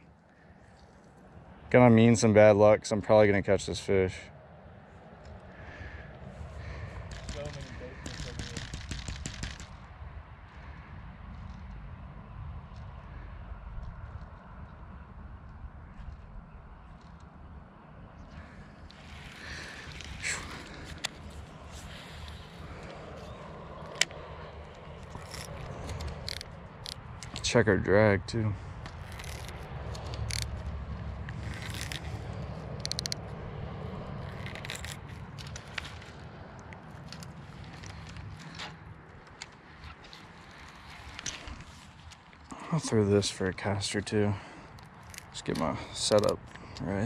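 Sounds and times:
fishing reel clicks: 0:25.2 - 0:27.0, 0:29.0 - 0:30.5, 0:32.8 - 0:33.2.

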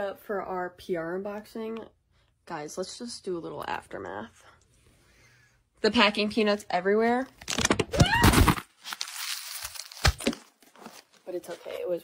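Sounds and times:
rustling of packing peanuts: 0:07.5 - 0:12.0.

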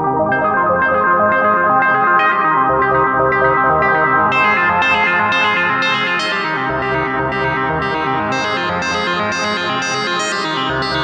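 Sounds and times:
synthesizer sequence with echoes: 0:00.0 - 0:11.0.

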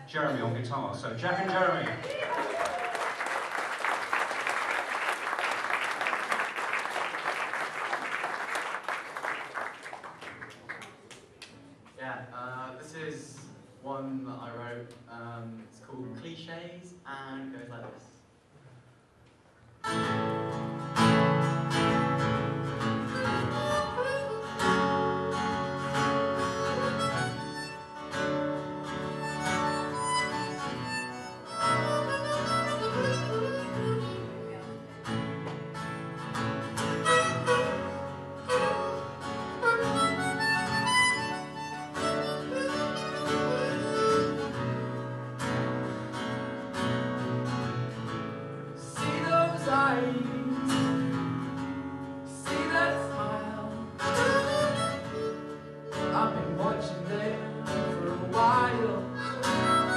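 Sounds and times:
harmonica melody: 0:19.8 - 0:47.9, 0:50.5 - 0:59.9
strummed acoustic guitar: 0:19.8 - 0:59.9.

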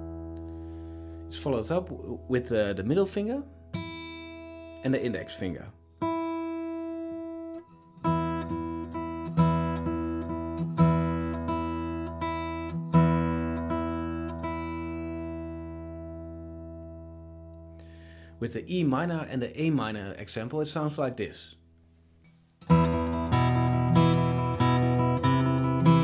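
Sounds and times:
fingerpicked acoustic guitar: 0:00.0 - 0:18.4, 0:22.1 - 0:26.0.

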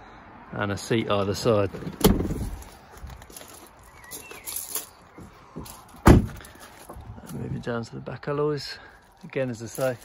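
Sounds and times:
faint bird chirp: 0:03.8 - 0:05.6.

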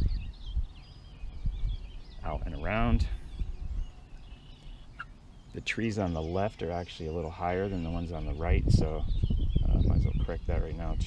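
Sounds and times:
faint high bird calls: 0:00.0 - 0:11.0
wind rumbling on microphone: 0:00.0 - 0:11.0.

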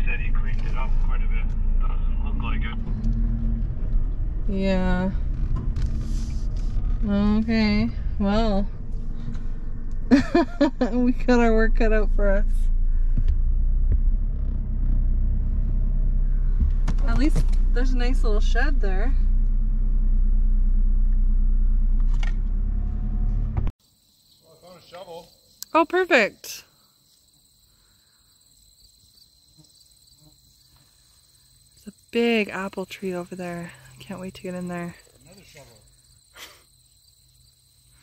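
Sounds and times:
car engine hum: 0:00.0 - 0:23.8, 0:31.9 - 0:37.8
tyre rumble: 0:00.3 - 0:23.7
crickets chirring: 0:23.8 - 0:38.0.

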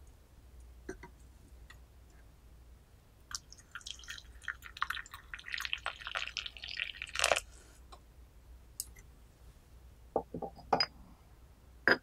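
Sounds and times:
water pouring into teapot: 0:03.3 - 0:07.5.

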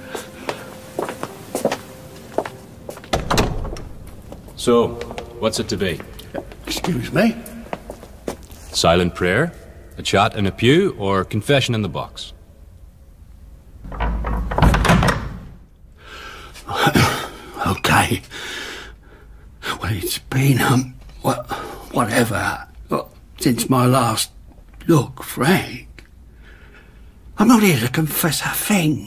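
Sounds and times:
door latch click: 0:03.1 - 0:04.2
heavy door thud with echo: 0:03.1 - 0:04.4, 0:13.8 - 0:15.7.

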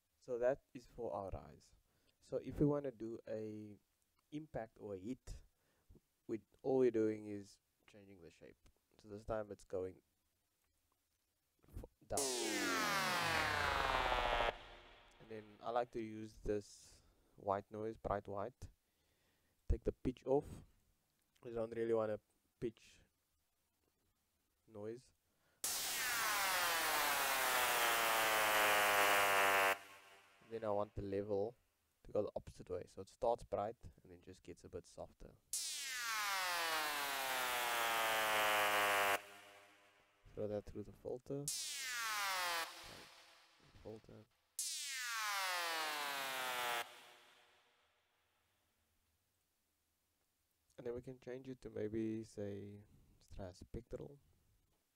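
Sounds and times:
synth note gliding downward: 0:12.2 - 0:15.2, 0:25.6 - 0:30.5, 0:35.6 - 0:39.7, 0:41.5 - 0:43.4, 0:44.6 - 0:47.3.

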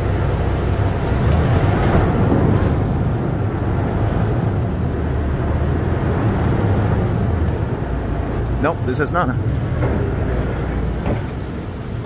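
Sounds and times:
boat engine low rumble: 0:00.0 - 0:12.0.

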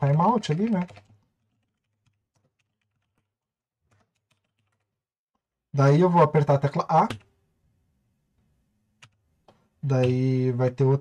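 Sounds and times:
faint typing on computer keyboard: 0:00.0 - 0:05.0, 0:07.0 - 0:07.4, 0:09.0 - 0:10.2.

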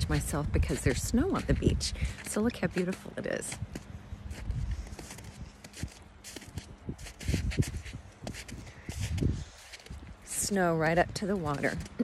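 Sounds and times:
footsteps crunching on snow: 0:00.0 - 0:12.0
wind buffeting microphone: 0:00.0 - 0:12.0.

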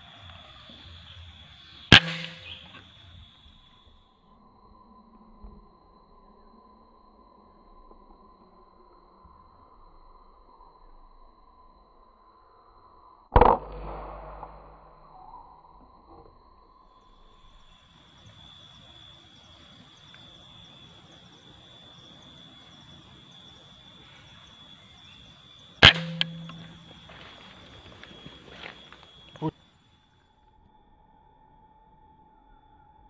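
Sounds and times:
air rifle shot: 0:01.9 - 0:02.8, 0:13.4 - 0:15.0, 0:25.8 - 0:27.0
faint steady high tone: 0:17.1 - 0:33.0.

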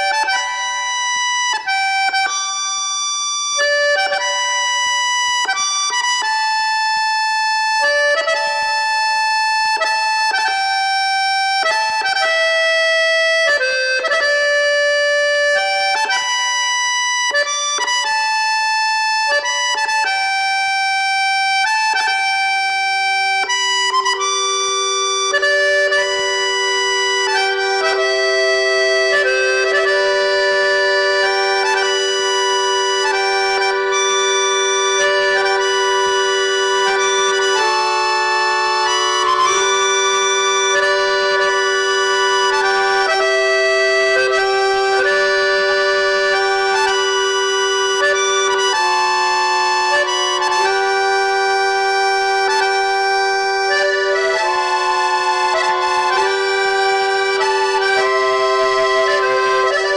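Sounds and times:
accordion playing slow melody: 0:00.0 - 0:59.9.

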